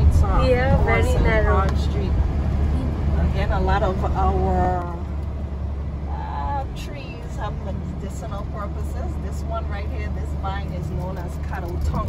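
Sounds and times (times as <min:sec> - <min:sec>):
voices talking: 0:00.0 - 0:05.2
car cabin engine and road rumble: 0:00.0 - 0:12.0.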